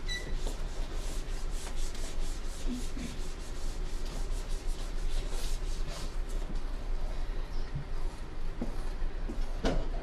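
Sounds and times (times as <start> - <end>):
marker squeak: 0.1 - 0.4.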